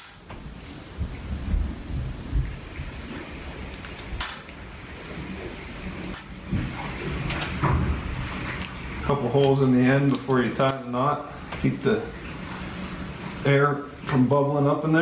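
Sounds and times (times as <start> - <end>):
low rumbling handling noise: 0.0 - 14.5.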